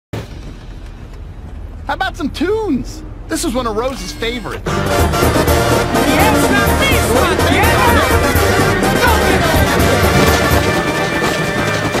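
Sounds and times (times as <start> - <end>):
brass band playing upbeat song: 4.0 - 12.0.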